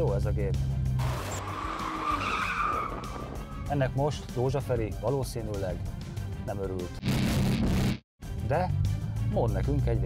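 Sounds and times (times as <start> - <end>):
car tyres squealing: 1.0 - 3.7.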